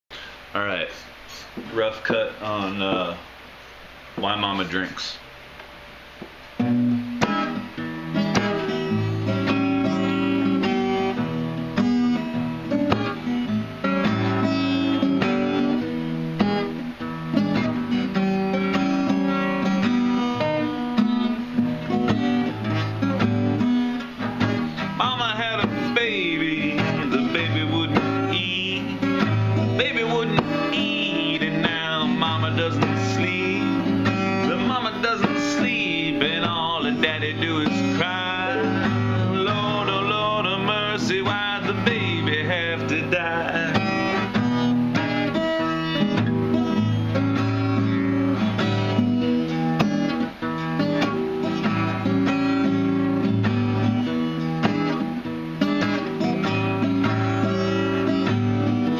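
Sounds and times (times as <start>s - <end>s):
acoustic guitar: 0.1s - 58.9s
man singing: 24.9s - 44.4s.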